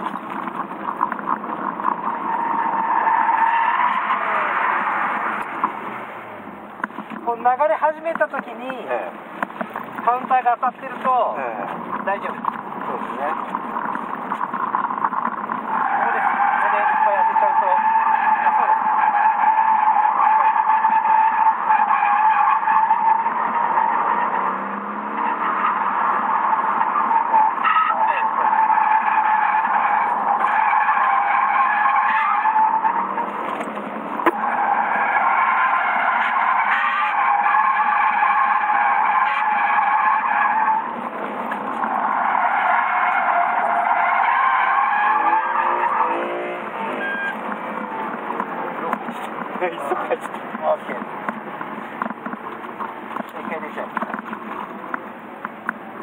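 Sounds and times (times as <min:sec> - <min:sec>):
car engine: 0:00.0 - 0:56.0
car tyres squealing: 0:00.0 - 0:56.0.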